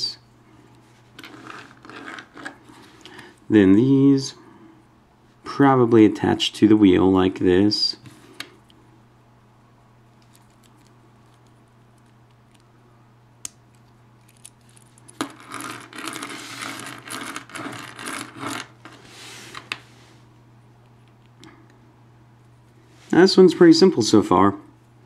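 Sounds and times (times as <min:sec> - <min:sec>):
scraping and rattling: 0:01.2 - 0:02.9, 0:14.6 - 0:19.8.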